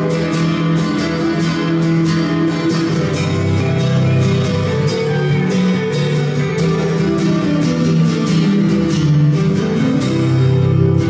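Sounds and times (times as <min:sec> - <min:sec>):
acoustic guitar strumming: 0:00.0 - 0:11.0
electric guitar playing: 0:00.0 - 0:11.0.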